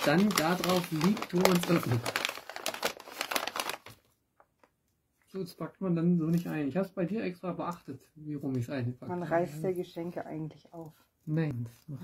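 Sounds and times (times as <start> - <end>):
wrapping paper crinkling: 0.0 - 4.7.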